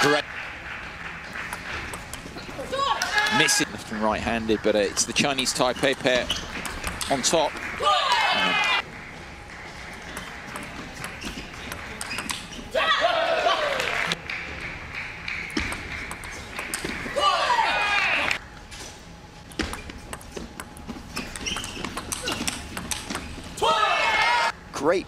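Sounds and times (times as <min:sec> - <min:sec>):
table tennis ball taps: 0:15.4 - 0:17.0.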